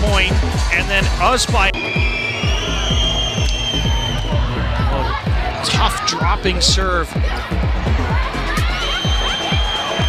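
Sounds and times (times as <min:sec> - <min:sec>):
fast kick drum beat: 0:00.0 - 0:10.0.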